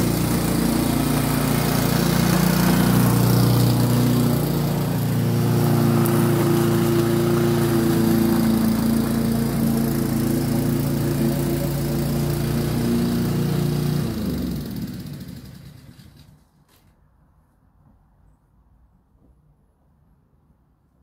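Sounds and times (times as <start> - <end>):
lawnmower engine running: 0.0 - 16.4.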